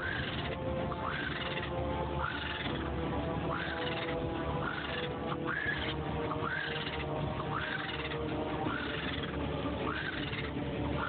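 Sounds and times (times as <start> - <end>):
bird call: 0.0 - 2.9, 3.5 - 11.0
background music with drone: 0.0 - 11.0.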